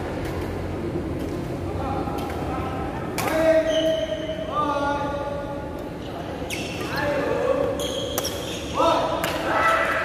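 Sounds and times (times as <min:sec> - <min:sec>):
shoe squeaks on court floor: 0:03.5 - 0:04.2, 0:06.4 - 0:08.8.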